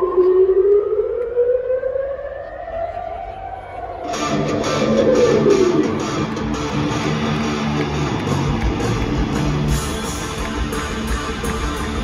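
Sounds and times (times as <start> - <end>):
rising siren-like tone: 0.0 - 6.3.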